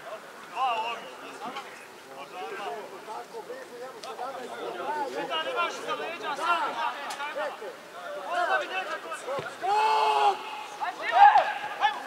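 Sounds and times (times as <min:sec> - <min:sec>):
voices shouting and calling: 0:00.0 - 0:12.0
long held shout: 0:09.6 - 0:12.0.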